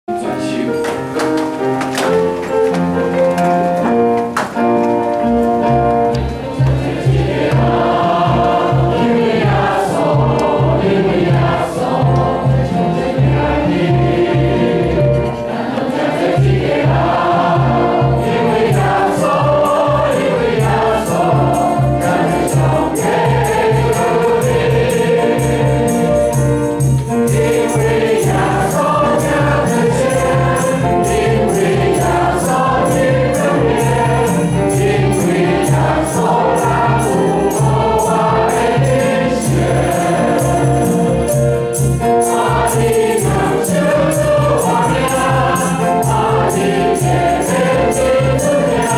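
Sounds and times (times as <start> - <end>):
congregation and choir singing hymn: 0.1 - 48.9
piano accompaniment: 0.1 - 48.9
high jingling percussion: 16.3 - 48.9.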